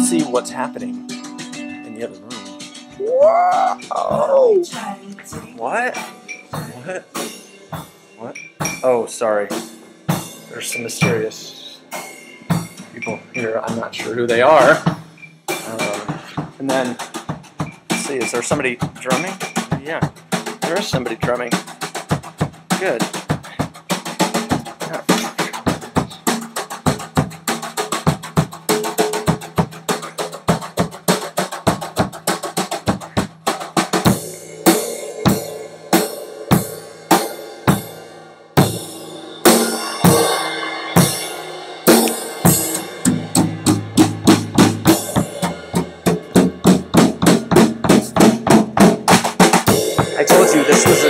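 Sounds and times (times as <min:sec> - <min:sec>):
drum kit beat: 0:00.0 - 0:51.0
cymbal crashes ringing: 0:34.2 - 0:43.9, 0:49.7 - 0:51.0.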